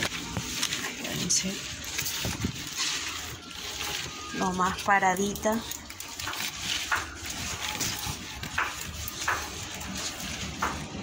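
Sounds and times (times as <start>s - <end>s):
leaves rustling against microphone: 0.0s - 11.0s.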